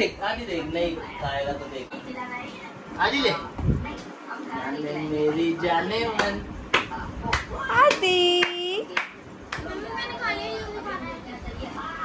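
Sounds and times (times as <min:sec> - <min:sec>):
hands clapping a steady beat: 0:06.1 - 0:09.8.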